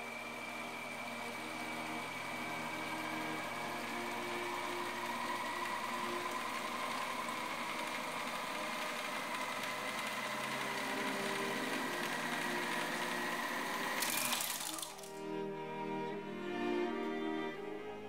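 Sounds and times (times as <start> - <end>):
microfilm reader motor whirring: 0.0 - 15.3.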